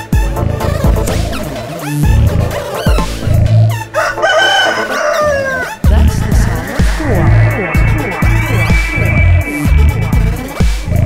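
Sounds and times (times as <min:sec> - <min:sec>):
rooster crowing: 0:03.9 - 0:05.8
dub music bass beat: 0:05.8 - 0:11.0.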